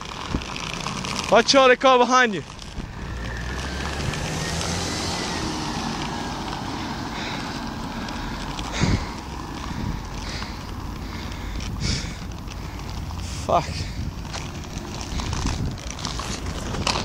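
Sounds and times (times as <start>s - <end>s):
wind and road noise from bicycle: 0.0s - 17.0s
car driving past: 2.6s - 13.5s.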